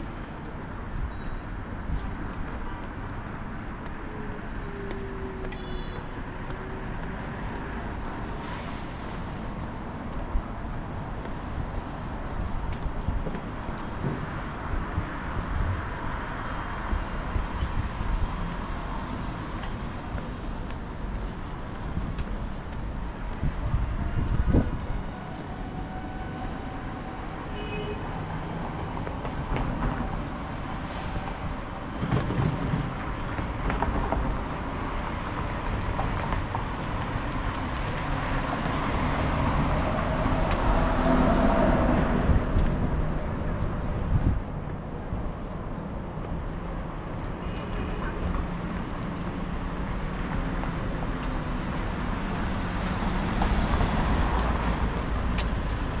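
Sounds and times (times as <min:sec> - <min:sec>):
cars passing on road: 0:00.0 - 0:56.0.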